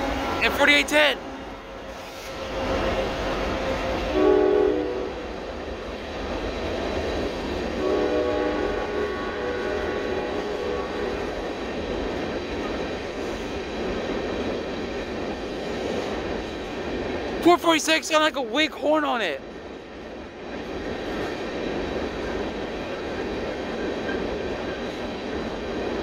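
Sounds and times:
freight train rumbling on trestle: 0:00.0 - 0:26.0
train air horn blasts: 0:04.1 - 0:05.2, 0:07.8 - 0:11.2.

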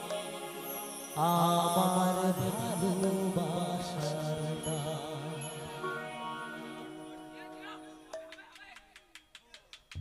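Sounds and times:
quiet instrumental accompaniment: 0:00.0 - 0:10.0
amplified folk singing: 0:01.2 - 0:06.8.

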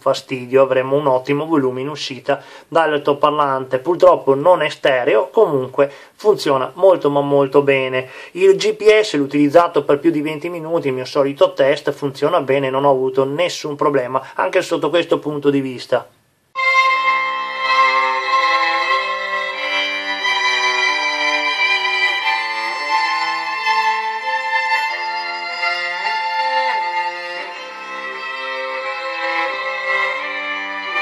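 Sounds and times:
violin music through phone speaker: 0:16.6 - 0:31.0.

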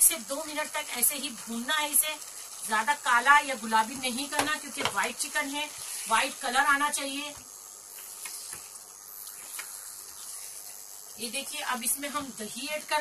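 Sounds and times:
woman talking: 0:00.0 - 0:07.4, 0:11.2 - 0:13.0
food sizzling in oil: 0:00.0 - 0:13.0.

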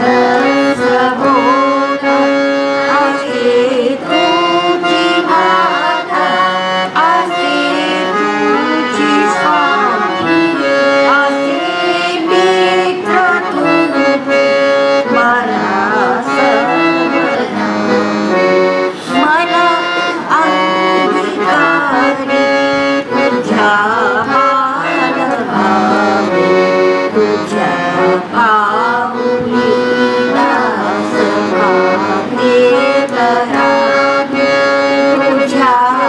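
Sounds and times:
harmonium melody: 0:00.0 - 0:36.0.

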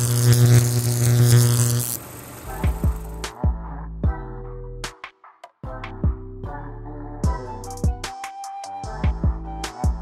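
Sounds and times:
electronic glitch buzzing with static: 0:00.0 - 0:03.2
electronic music: 0:00.0 - 0:03.7.

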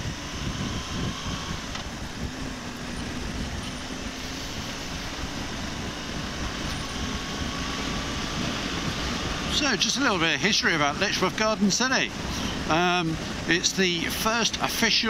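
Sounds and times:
motorcycle engine running: 0:00.0 - 0:15.0
wind and road noise: 0:00.0 - 0:15.0.

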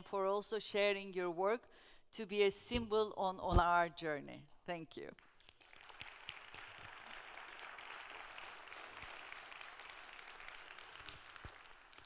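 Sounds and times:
audience applauding: 0:05.5 - 0:12.0.

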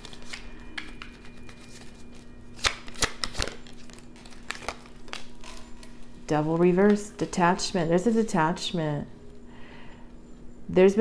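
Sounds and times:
cards snapping: 0:00.0 - 0:02.0, 0:02.6 - 0:05.6
cards flicking and rustling: 0:00.0 - 0:06.0.

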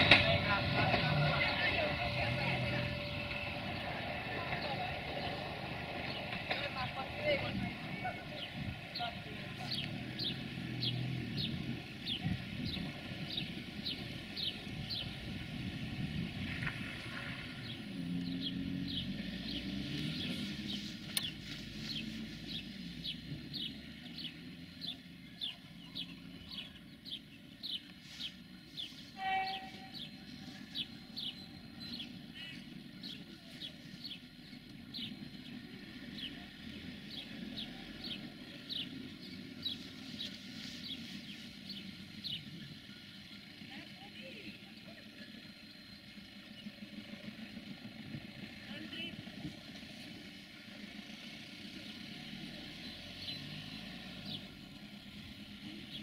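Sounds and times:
distant train rumbling: 0:00.0 - 0:56.0
short tone: 0:29.1 - 0:30.2.

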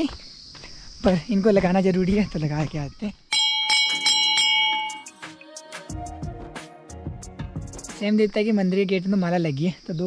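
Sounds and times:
metal temple bell ringing: 0:03.3 - 0:05.1.

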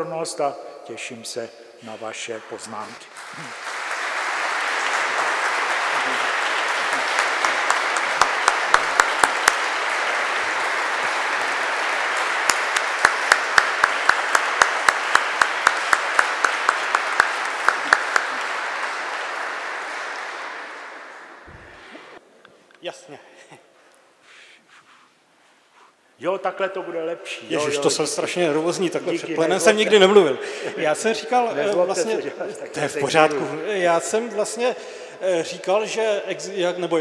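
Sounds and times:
audience applauding: 0:02.8 - 0:22.2.

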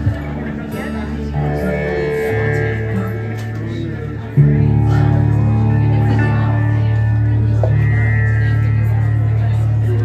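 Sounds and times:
acoustic guitars sustained notes: 0:00.0 - 0:10.0
loud low guitar chord: 0:00.0 - 0:10.0.

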